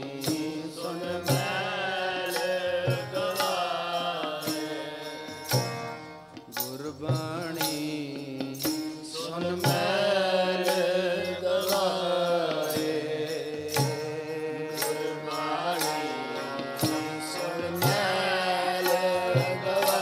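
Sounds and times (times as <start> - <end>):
person singing: 0.0 - 5.9, 6.5 - 20.0
harmonium chords: 0.0 - 20.0.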